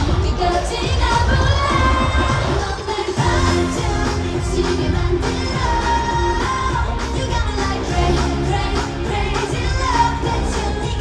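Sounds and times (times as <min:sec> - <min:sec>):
female singing pop song: 0:00.0 - 0:11.0.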